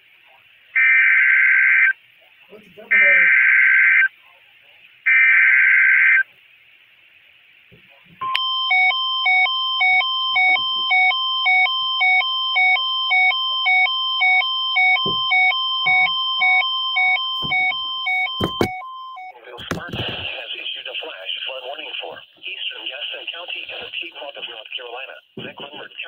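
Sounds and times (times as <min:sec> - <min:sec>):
warbling data bursts: 0:02.8 - 0:04.2, 0:05.0 - 0:06.3.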